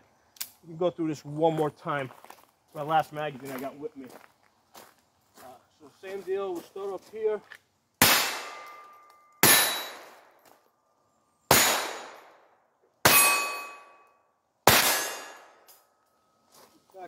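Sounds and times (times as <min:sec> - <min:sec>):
pistol shots: 0:08.0 - 0:08.8, 0:09.4 - 0:10.3, 0:11.5 - 0:12.4, 0:14.6 - 0:15.6
steel target plate clanging: 0:08.0 - 0:10.1, 0:13.1 - 0:14.0, 0:14.7 - 0:15.6.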